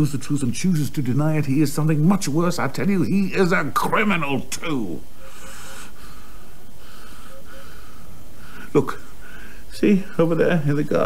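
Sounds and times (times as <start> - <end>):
steady background hiss: 0.0 - 11.0
person breathing softly: 5.2 - 10.2.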